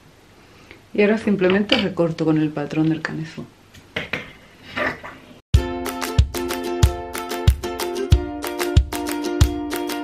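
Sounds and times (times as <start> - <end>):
upbeat instrumental music: 5.6 - 10.0.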